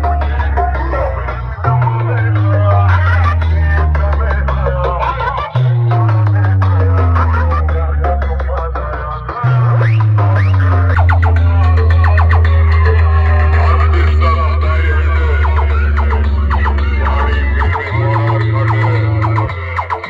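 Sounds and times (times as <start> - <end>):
loud electronic dance music: 0.0 - 20.0
strong held bass notes: 0.0 - 20.0.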